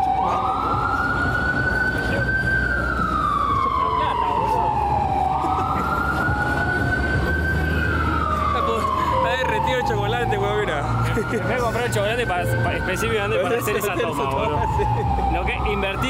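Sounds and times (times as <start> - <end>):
emergency vehicle siren wailing: 0.0 - 16.0
low traffic rumble: 0.0 - 16.0.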